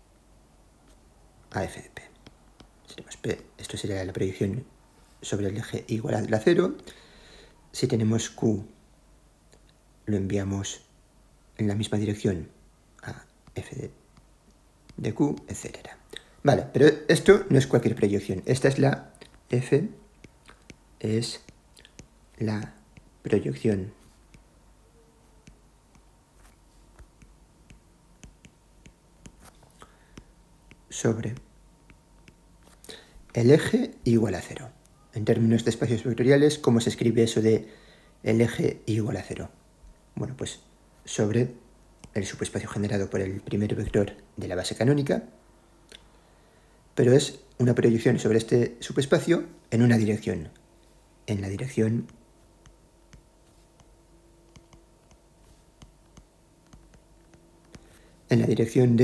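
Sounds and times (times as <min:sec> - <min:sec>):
low steady hum: 0:00.0 - 0:59.0
faint breath: 0:06.8 - 0:07.7, 0:29.7 - 0:30.4, 0:32.7 - 0:33.3, 0:37.6 - 0:38.2, 0:45.6 - 0:46.9, 0:57.8 - 0:58.3
stylus tapping on glass screen: 0:25.4 - 0:29.6.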